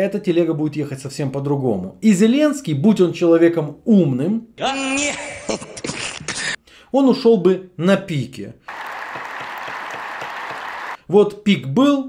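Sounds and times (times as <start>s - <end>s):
large audience applauding: 8.7s - 11.0s.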